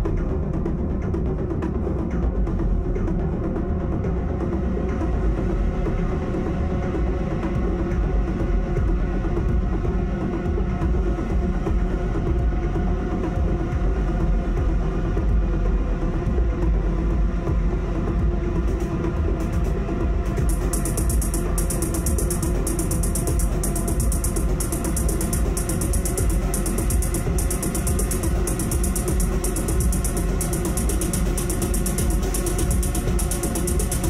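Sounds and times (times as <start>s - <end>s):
electronic noise drone: 6.9s - 34.0s
rapid high stuttering texture: 20.4s - 34.0s.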